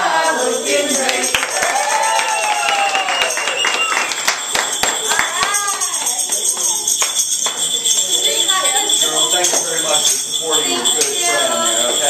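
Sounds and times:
group singing along: 0.0 - 1.9, 10.5 - 12.0
tambourine jingling: 0.0 - 12.0
group clapping: 0.9 - 8.1
people cheering: 1.0 - 6.7.

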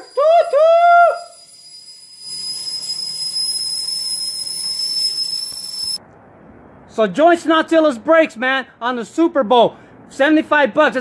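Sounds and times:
kettle whistling: 0.0 - 6.0.

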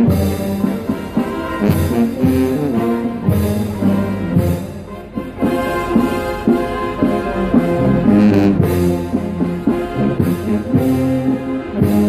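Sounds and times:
brass band playing march: 0.0 - 12.0
percussion strokes: 0.0 - 12.0.

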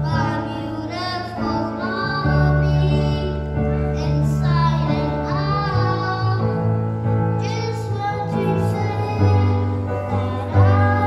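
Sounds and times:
boy singing into a microphone: 0.0 - 11.0
instrumental accompaniment: 0.0 - 11.0.

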